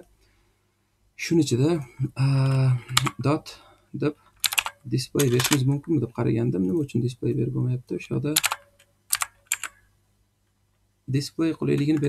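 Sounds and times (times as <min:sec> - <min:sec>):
keyboard key clicks: 0:04.4 - 0:05.6, 0:08.4 - 0:09.8.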